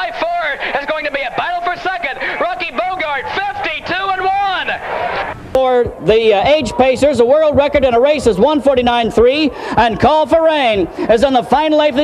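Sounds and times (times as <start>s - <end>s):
man calling a race: 0.0s - 4.8s, 5.6s - 12.0s.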